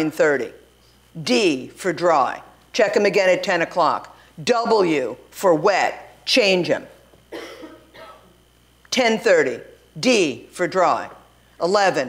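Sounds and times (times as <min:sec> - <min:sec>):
woman coughing: 0:07.3 - 0:08.4.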